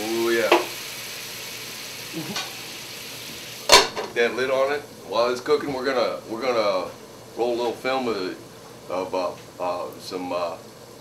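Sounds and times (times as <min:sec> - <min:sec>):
fish sizzling in a skillet: 0:00.0 - 0:04.6
metal lid clanking onto pan: 0:03.7 - 0:04.2.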